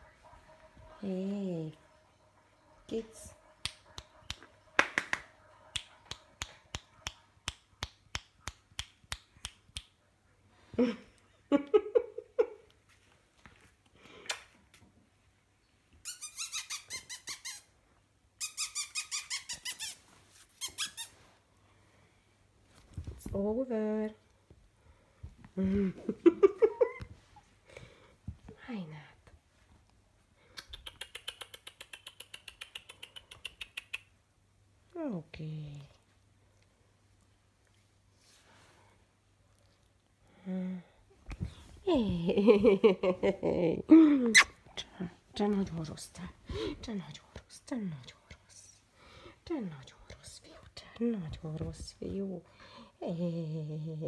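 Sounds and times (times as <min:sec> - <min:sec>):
woman laughing: 0:25.6 - 0:27.1, 0:42.3 - 0:44.2
person making sharp clicks: 0:30.5 - 0:34.1.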